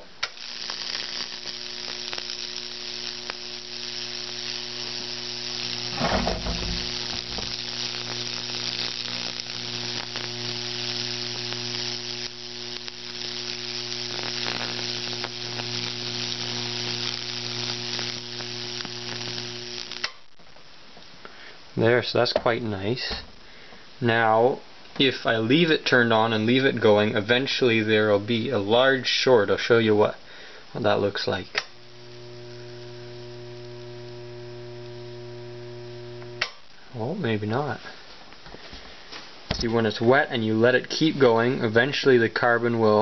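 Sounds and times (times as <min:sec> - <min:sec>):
electric arcs sizzling and crackling: 0:00.0 - 0:20.6, 0:25.0 - 0:30.2, 0:30.8 - 0:43.0
transformer mains hum: 0:01.8 - 0:23.6, 0:30.9 - 0:37.9.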